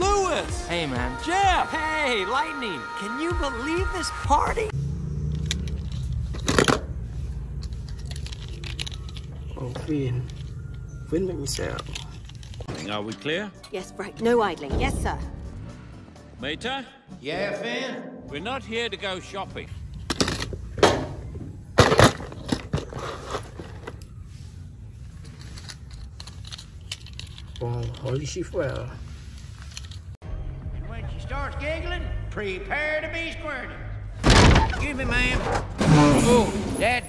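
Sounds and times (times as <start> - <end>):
toy cars clicking and knocking: 7.5 - 9.6, 25.2 - 28.8.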